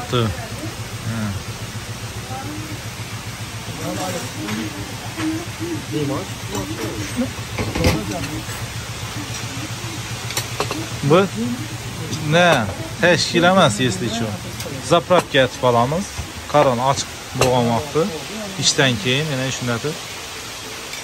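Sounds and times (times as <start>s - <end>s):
steady low hum: 0.0s - 20.8s
indistinct background talk: 0.0s - 20.9s.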